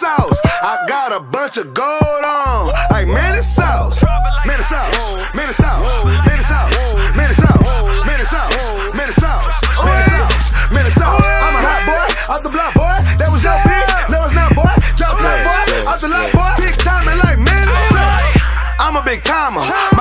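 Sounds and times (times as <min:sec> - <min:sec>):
rapping over a bass-heavy beat: 0:00.0 - 0:20.0.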